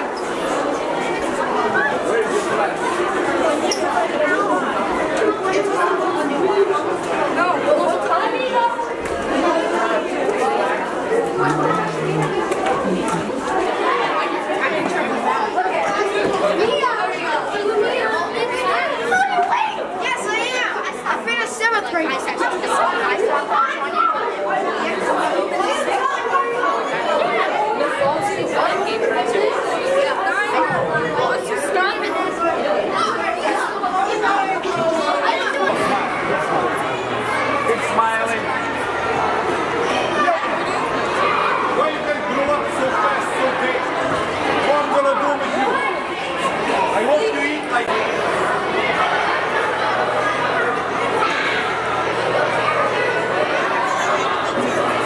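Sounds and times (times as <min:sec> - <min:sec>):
children chattering: 0:00.0 - 0:55.0.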